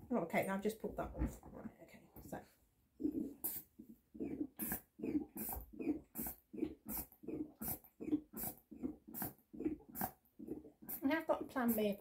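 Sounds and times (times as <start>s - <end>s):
hand air pump strokes: 3.0s - 12.0s.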